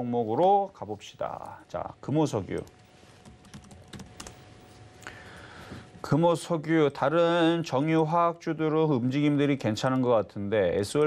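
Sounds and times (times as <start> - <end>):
faint steady hum: 0.0 - 11.0
computer keyboard keystrokes: 3.5 - 4.4.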